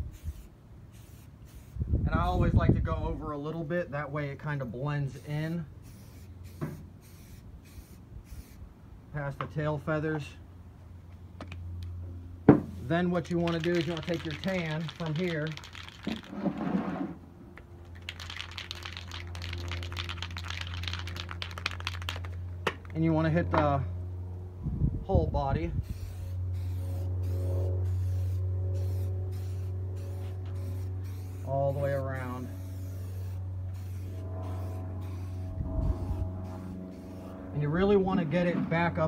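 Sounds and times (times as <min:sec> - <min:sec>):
steady low hum: 0:00.0 - 0:39.0
spray paint can hissing: 0:00.1 - 0:01.8, 0:05.2 - 0:08.6, 0:13.4 - 0:16.4, 0:17.8 - 0:22.4, 0:25.9 - 0:37.3
spray can ball rattling: 0:13.2 - 0:16.5, 0:17.8 - 0:23.0.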